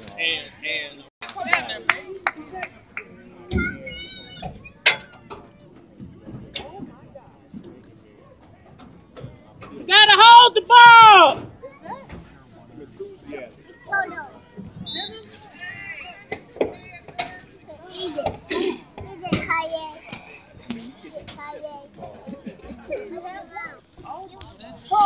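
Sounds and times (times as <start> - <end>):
faint background voices: 0.0 - 25.0.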